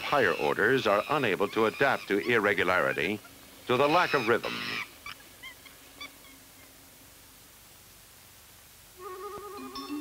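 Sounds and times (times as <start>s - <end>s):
chimpanzee squeaking: 0.0s - 6.7s.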